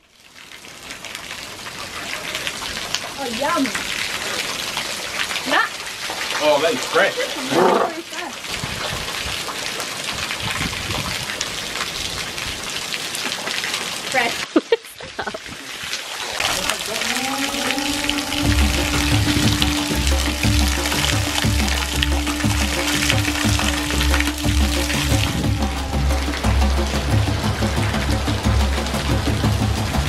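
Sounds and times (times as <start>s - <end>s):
water dripping onto stone: 0.4s - 30.0s
voices: 16.4s - 26.0s.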